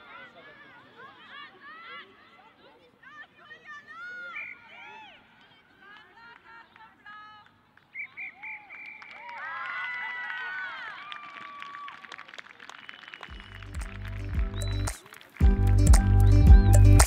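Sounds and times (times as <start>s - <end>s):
women shouting and calling: 0.0s - 7.4s
music with heavy bass beat: 13.7s - 17.0s.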